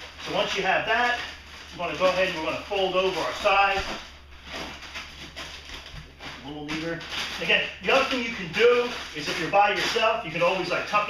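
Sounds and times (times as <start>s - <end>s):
plastic sheeting rustling and crinkling: 0.0s - 11.0s.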